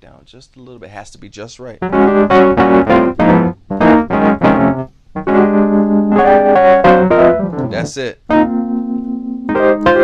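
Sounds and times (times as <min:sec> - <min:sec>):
distorted electric piano chords: 0:01.8 - 0:10.0.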